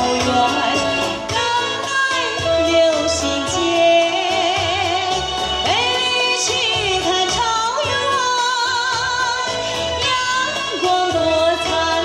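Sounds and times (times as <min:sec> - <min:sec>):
musical accompaniment: 0:00.0 - 0:12.0
woman singing pop ballad: 0:00.0 - 0:12.0.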